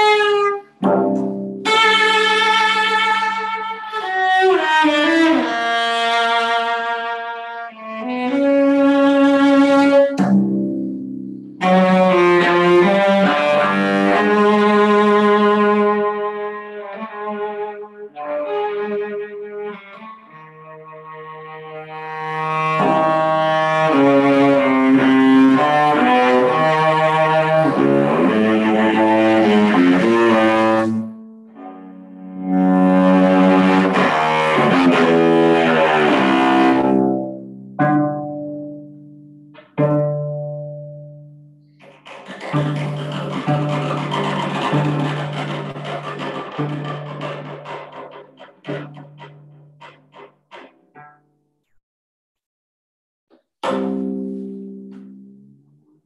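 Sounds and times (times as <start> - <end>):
bowed cello: 0.0 - 51.2.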